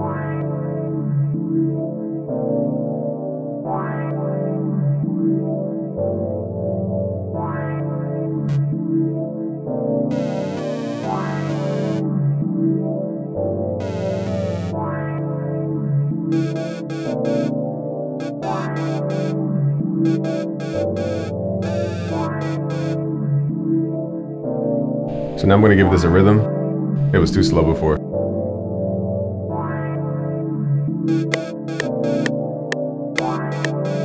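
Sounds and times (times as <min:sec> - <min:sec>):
filtered synth pad chords: 0:10.0 - 0:25.4, 0:28.0 - 0:34.0.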